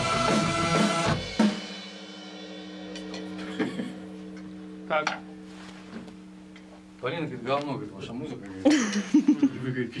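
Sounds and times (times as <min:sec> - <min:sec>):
steady low hum: 0:02.5 - 0:10.0.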